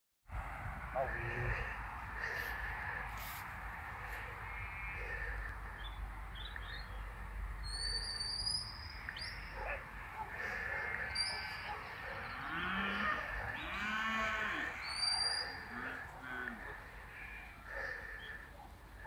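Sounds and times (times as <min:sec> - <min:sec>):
sheep bleating: 0:12.5 - 0:14.8.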